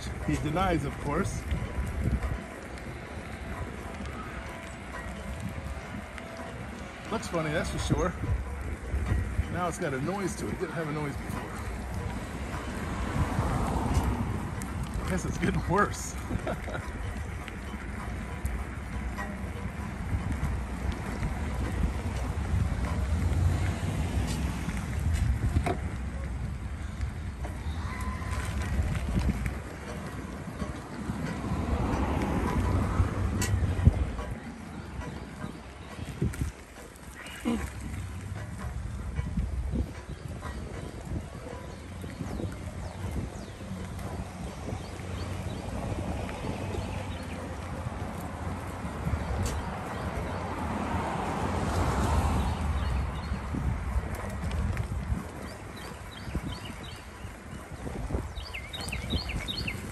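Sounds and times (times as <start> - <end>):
bicycle tyre noise: 0.0 - 59.9
wind rumbling on microphone: 0.0 - 59.9.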